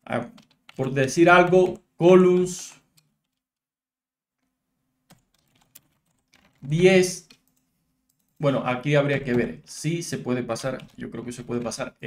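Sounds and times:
computer keyboard keystrokes: 0.3s - 3.4s, 5.1s - 8.4s.

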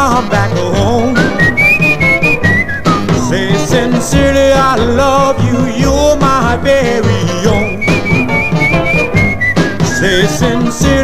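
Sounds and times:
high pure-toned melody: 0.9s - 5.6s.

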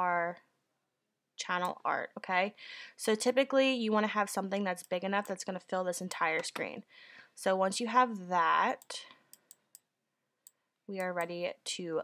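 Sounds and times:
computer mouse clicks: 8.8s - 11.3s.

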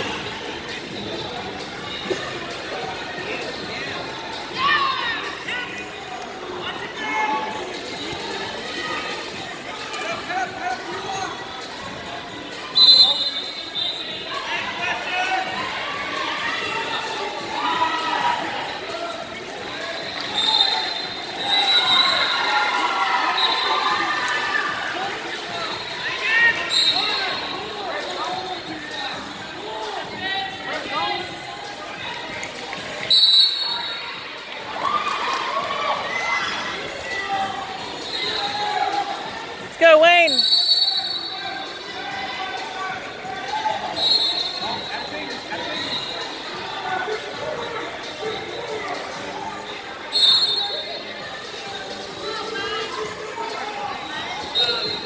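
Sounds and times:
background murmur: 0.0s - 55.0s
crowd talking and calling out: 0.0s - 55.0s.

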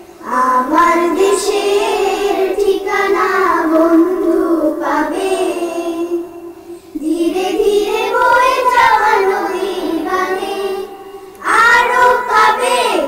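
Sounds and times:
young children singing: 0.0s - 13.0s.

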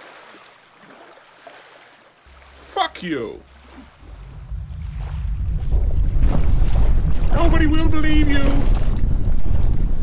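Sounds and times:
low rushing rumble: 2.3s - 10.0s.

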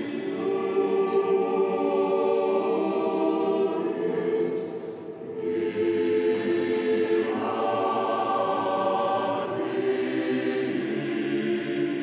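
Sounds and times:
choir singing slow chant: 0.0s - 12.0s.

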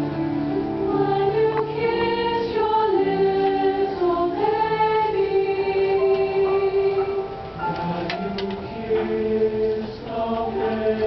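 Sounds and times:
choir singing in harmony: 0.0s - 11.0s.

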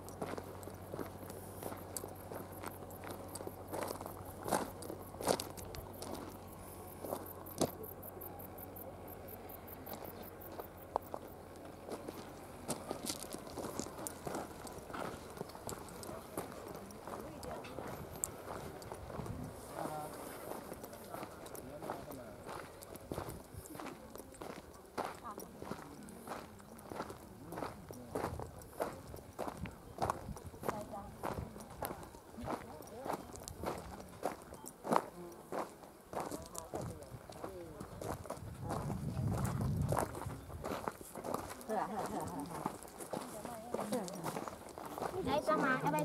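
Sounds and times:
faint voices: 0.0s - 46.0s
footsteps on gravel: 0.0s - 46.0s.

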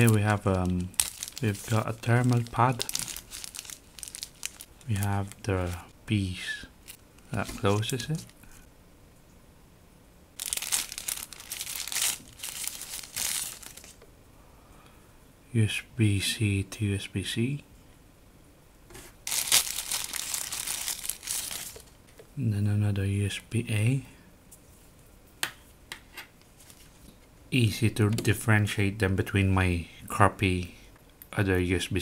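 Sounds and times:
plastic packaging crinkling: 0.0s - 5.9s, 6.8s - 8.5s, 10.4s - 14.0s, 19.2s - 22.0s.

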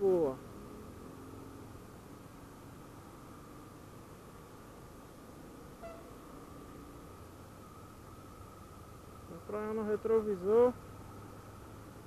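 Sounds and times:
motorcycle engine and road noise: 0.0s - 12.0s.

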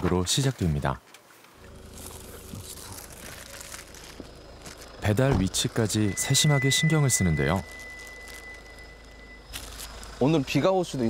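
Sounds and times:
car engine idling: 1.6s - 11.0s
high-pitched tone: 5.5s - 9.6s.

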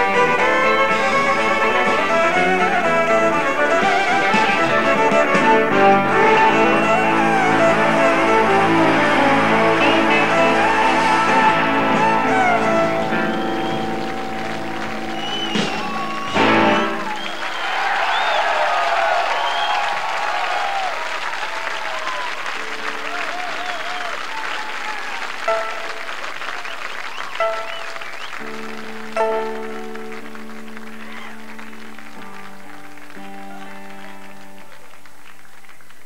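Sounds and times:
amplified guitar notes: 0.0s - 17.1s, 27.4s - 35.2s
audience applauding and cheering: 0.0s - 36.0s
audience whistling: 0.0s - 36.0s.

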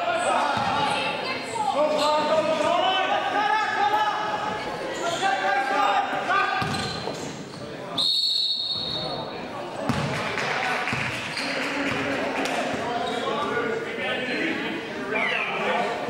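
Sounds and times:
basketball bouncing: 6.6s - 7.0s, 9.9s - 10.2s
referee's whistle blast: 8.0s - 9.2s.

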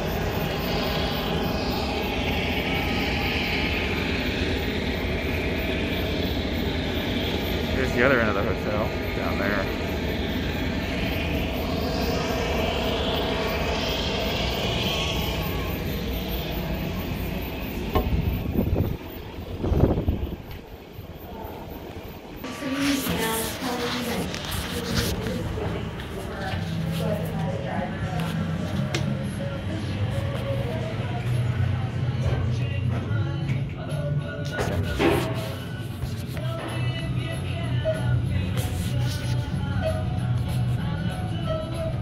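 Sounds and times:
jet aircraft rumble: 0.0s - 32.6s
low hum: 0.0s - 41.9s
background music indoors: 28.9s - 42.0s.

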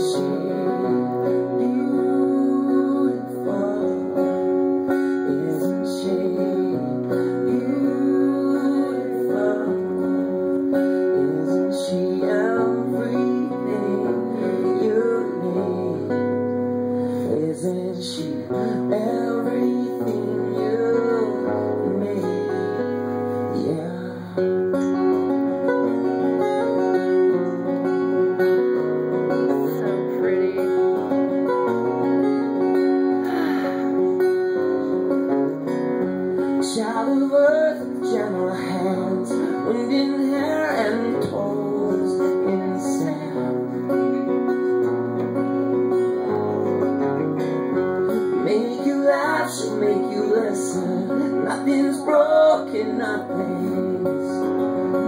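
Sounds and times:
acoustic guitar strumming: 0.0s - 55.0s
electric guitar playing: 0.0s - 55.0s
man singing: 0.0s - 55.0s.

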